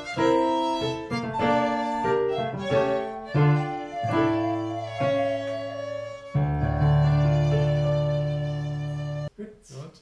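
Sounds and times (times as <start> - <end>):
keyboard accompaniment: 0.0 - 9.3
violin melody: 0.0 - 9.3.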